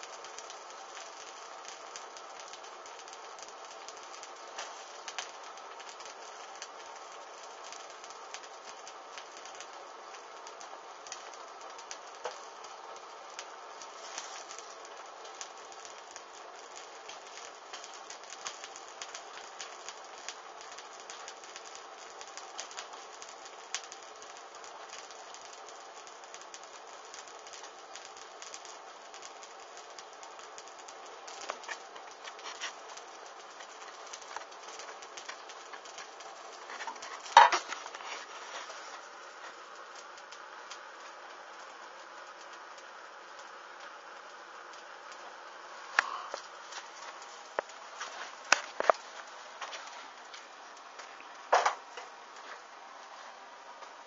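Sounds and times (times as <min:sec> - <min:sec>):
flames crackling and hissing: 0:00.0 - 0:54.0.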